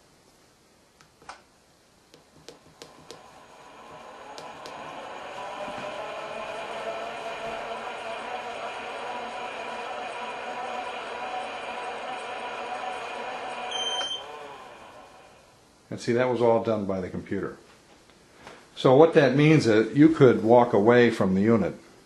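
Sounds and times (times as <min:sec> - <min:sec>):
motor whining: 0:02.8 - 0:15.5
short electronic beep: 0:13.7 - 0:14.2.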